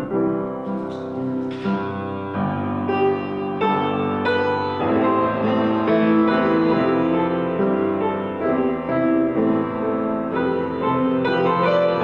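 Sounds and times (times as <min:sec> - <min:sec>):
slow grand piano chords: 0:00.0 - 0:12.0.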